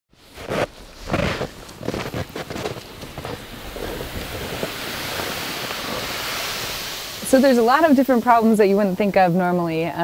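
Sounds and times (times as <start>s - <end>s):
hiss of snow and wind: 0.1s - 10.0s
boots crunching on snow: 0.2s - 6.7s.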